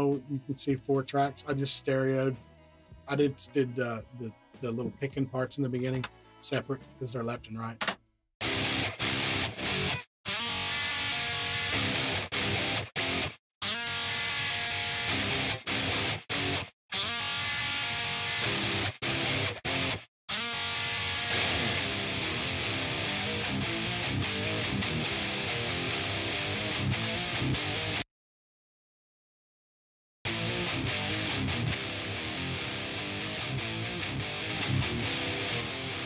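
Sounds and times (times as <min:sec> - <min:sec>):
distorted electric guitar riff: 0:08.4 - 0:28.0, 0:30.3 - 0:36.0.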